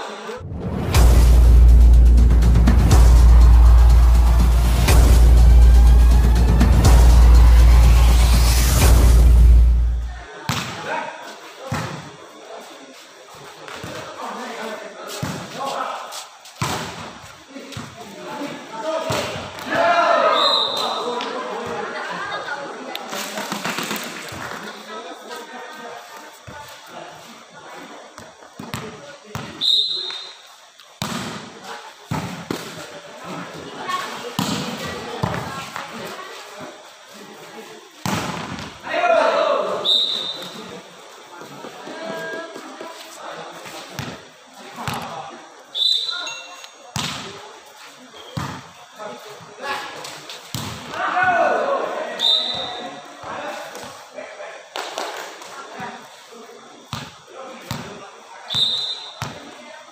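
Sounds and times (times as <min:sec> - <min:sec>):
people shouting: 0:02.3 - 0:10.0, 0:19.6 - 0:21.2, 0:38.8 - 0:39.9, 0:50.9 - 0:52.2.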